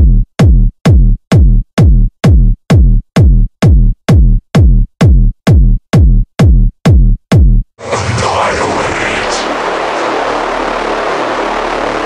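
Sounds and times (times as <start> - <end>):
dense noisy drone: 7.8 - 12.0.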